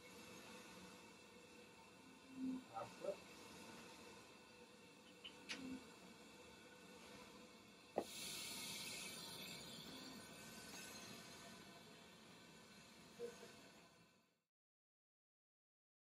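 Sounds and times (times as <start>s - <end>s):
air hissing from flow generator: 0.0s - 13.5s.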